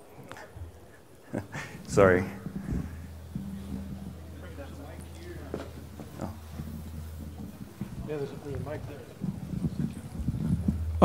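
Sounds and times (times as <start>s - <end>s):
steady low hum: 0.0s - 11.0s
thumps and knocks on microphone: 1.4s - 11.0s.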